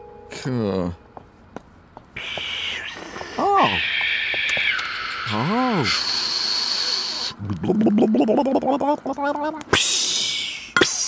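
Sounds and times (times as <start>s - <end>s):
kettle steam hiss: 2.2s - 7.4s
person humming: 7.4s - 9.2s.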